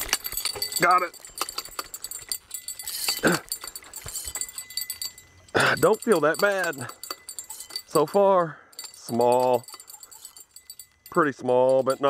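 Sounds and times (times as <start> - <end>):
fishing reel clicking and rattling: 0.0 - 12.0.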